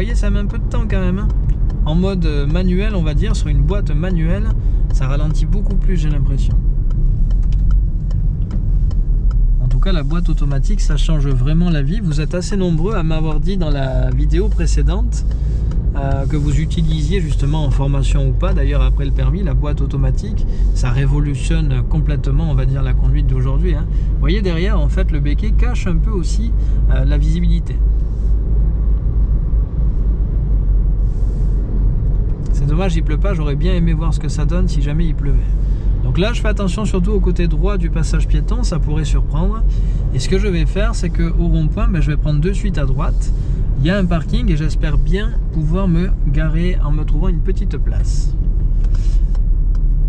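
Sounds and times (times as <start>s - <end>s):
road and engine rumble: 0.0s - 50.0s.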